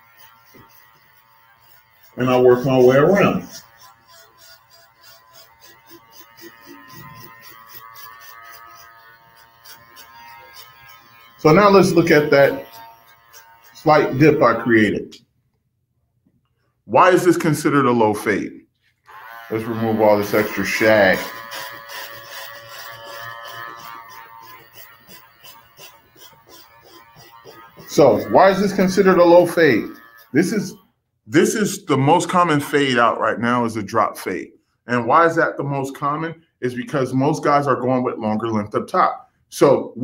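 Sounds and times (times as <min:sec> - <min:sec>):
electric hair clipper running: 0:00.0 - 0:14.7, 0:19.1 - 0:30.7.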